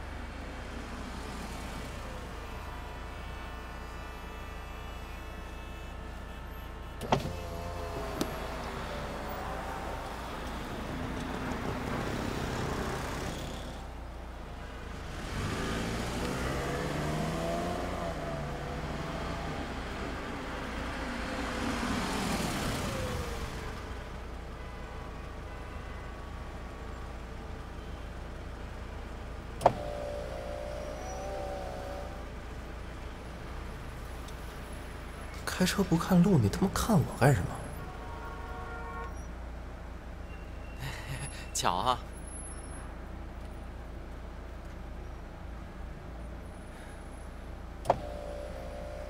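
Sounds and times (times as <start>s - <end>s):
car engines revving: 6.8s - 24.4s, 28.4s - 38.3s, 46.4s - 49.0s.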